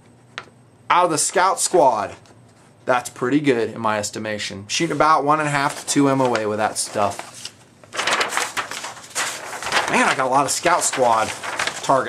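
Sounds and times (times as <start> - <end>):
person speaking: 0.9 - 12.0
paper rustling and crinkling: 4.8 - 12.0.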